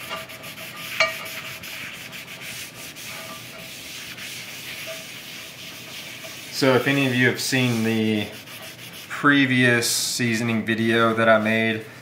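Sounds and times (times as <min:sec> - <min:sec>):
paper towel scrubbing skillet: 0:00.0 - 0:11.7.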